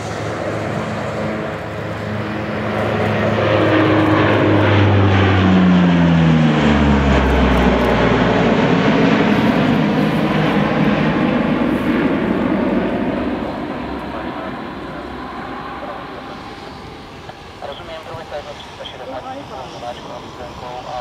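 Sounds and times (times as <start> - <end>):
turboprop aircraft passing overhead: 0.0 - 21.0.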